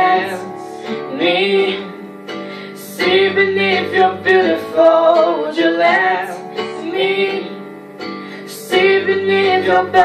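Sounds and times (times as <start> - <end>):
backing track with bass: 0.0 - 10.0
girl singing into microphone: 0.0 - 10.0.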